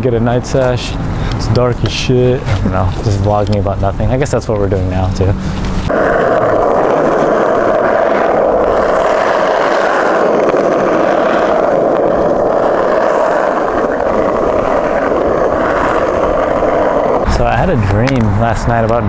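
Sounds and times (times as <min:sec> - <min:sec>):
skateboard wheels rolling on asphalt: 0:00.0 - 0:19.0.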